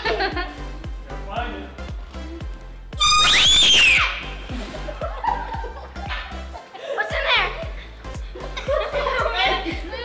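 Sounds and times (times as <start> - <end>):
background music with steady beat: 0.0 - 10.0
girl screaming: 3.0 - 4.3.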